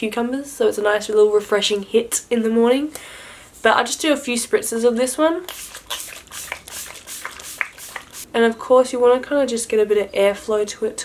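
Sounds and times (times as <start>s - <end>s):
spray bottle spritzes: 5.4s - 8.3s.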